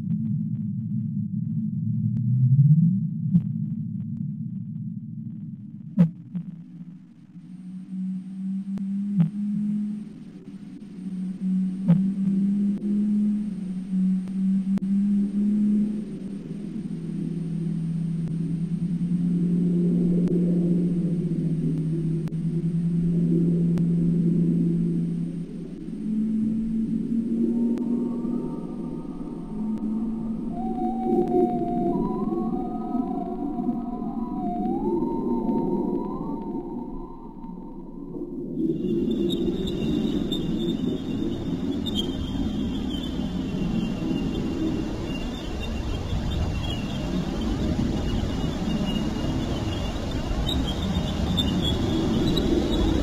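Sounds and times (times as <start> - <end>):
low whale-like tones: 0.0 - 53.0.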